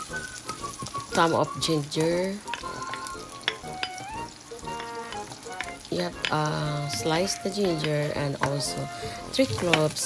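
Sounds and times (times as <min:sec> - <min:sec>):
background music: 0:00.0 - 0:10.0
onion sizzling in hot oil: 0:00.0 - 0:10.0.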